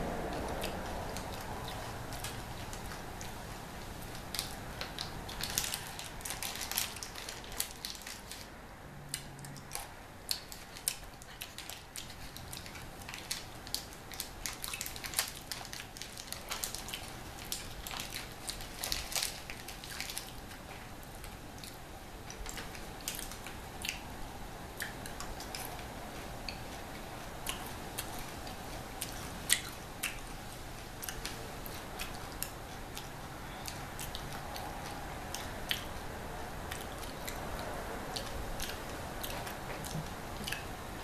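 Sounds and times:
crunching and chewing candy: 0:00.2 - 0:08.5, 0:09.1 - 0:24.0, 0:27.4 - 0:41.0
wrapper crinkling: 0:04.1 - 0:08.5, 0:10.4 - 0:20.5.

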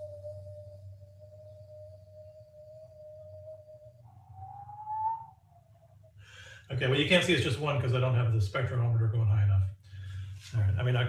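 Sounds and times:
person whistling: 0:00.0 - 0:05.6.

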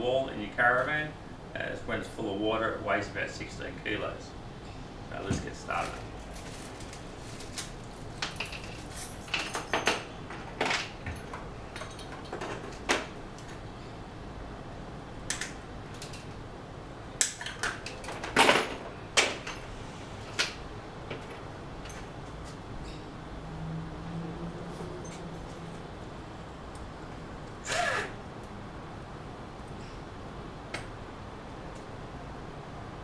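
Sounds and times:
plastic packaging rustling: 0:05.7 - 0:09.0.

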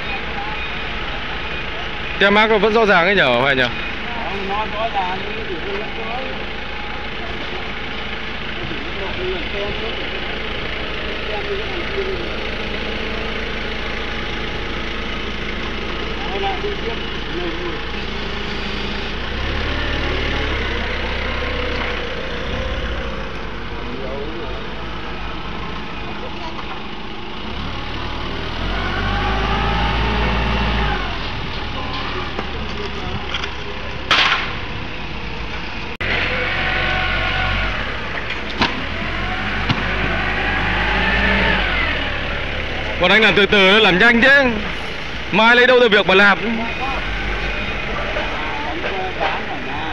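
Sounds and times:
vehicle engine idling: 0:00.0 - 0:49.9
voices: 0:00.0 - 0:49.9
yard din: 0:28.3 - 0:49.9.

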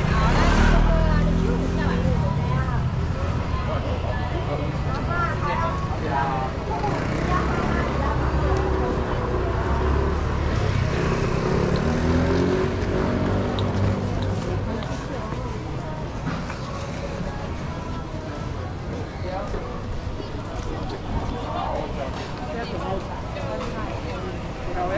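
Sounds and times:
passers-by talking: 0:00.0 - 0:24.9.

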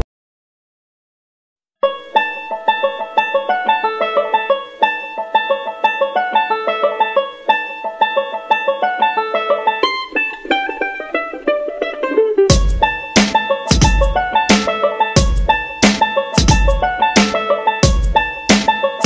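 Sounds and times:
plucked-string tune: 0:01.8 - 0:19.0
drum hits: 0:12.5 - 0:18.9.

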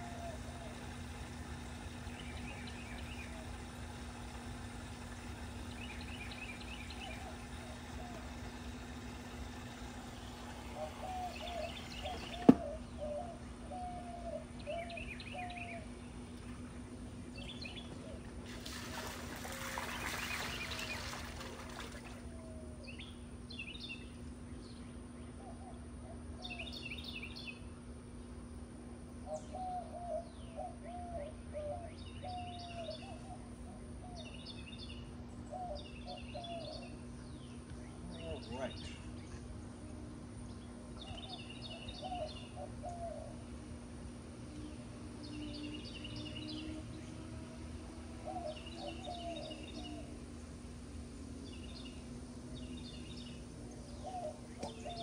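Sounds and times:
birds chirping: 0:00.0 - 0:28.4, 0:29.2 - 0:55.0
low hum: 0:00.0 - 0:55.0.

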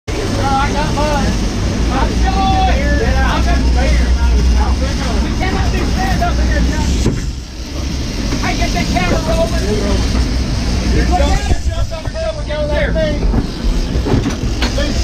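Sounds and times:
boat engines rumbling: 0:00.1 - 0:15.0.

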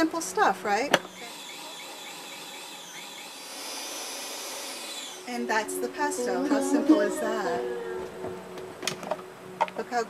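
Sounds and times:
food processor running: 0:01.2 - 0:05.3.

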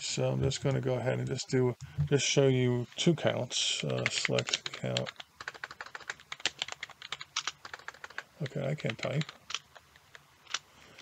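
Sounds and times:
rapid keyboard typing: 0:03.8 - 0:11.0.

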